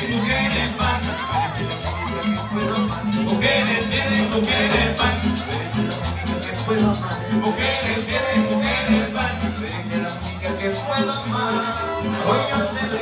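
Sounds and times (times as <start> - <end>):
shaker keeping fast beat: 0.0 - 13.0
string band dance music: 0.0 - 13.0.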